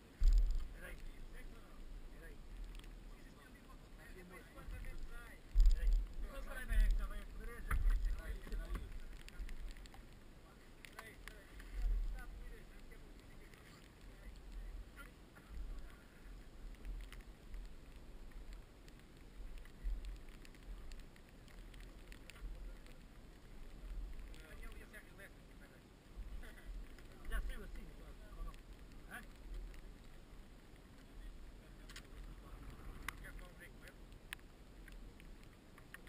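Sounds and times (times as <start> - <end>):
wind rumbling on microphone: 0.0 - 36.0.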